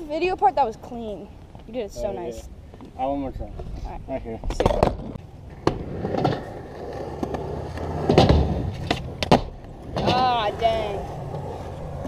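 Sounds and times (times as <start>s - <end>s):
skateboard wheels rolling on concrete: 0.0s - 12.0s
skateboard clacks: 4.4s - 12.0s.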